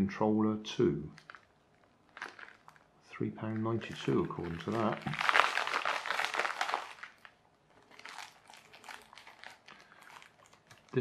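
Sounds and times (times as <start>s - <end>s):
plastic mailer bag crinkling: 1.1s - 11.0s.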